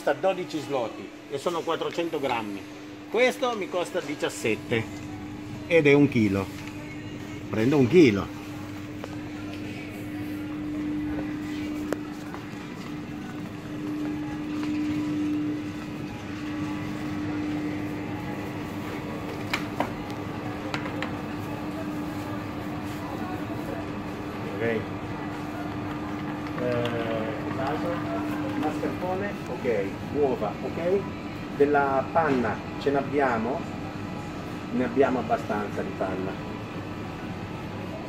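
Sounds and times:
refrigerator hum: 0.0s - 38.0s
faint voices: 2.6s - 38.0s.

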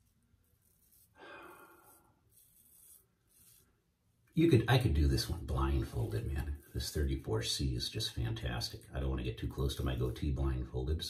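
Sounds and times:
razor scraping through stubble: 0.0s - 3.8s.

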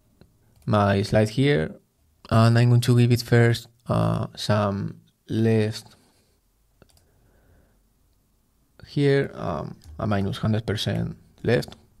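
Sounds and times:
computer mouse clicks: 6.8s - 7.1s.

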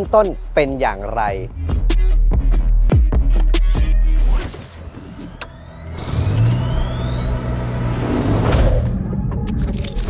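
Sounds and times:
rising synthetic whoosh: 4.2s - 9.1s
car engine starting and running: 4.2s - 10.0s.

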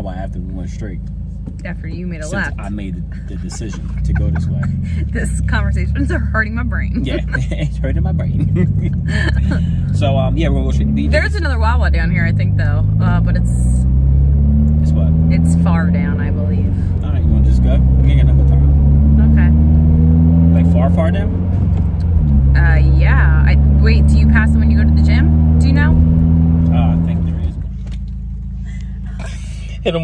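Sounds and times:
car engine and road drone: 0.0s - 30.0s.

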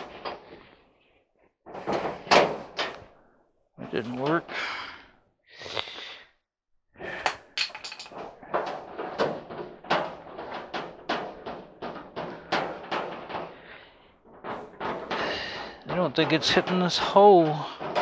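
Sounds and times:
metal parts rattling in cabinet: 1.7s - 3.1s, 3.8s - 4.6s, 7.2s - 18.0s.

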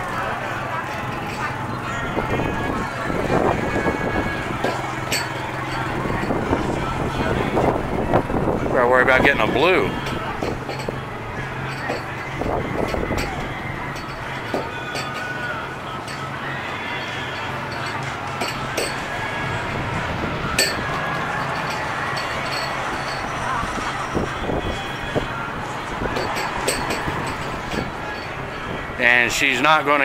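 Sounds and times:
crowd voices: 0.0s - 30.0s.

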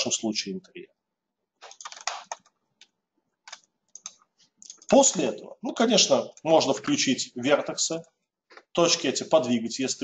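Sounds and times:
computer mouse clicks: 1.6s - 5.0s.

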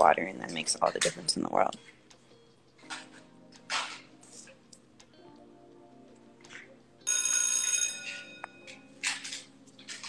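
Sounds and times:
faint music: 0.0s - 10.0s
bright ringing tone: 7.0s - 8.9s.

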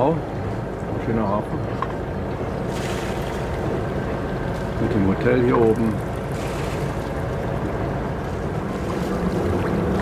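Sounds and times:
boat diesel engine running: 0.0s - 10.0s
water noise: 0.0s - 10.0s.

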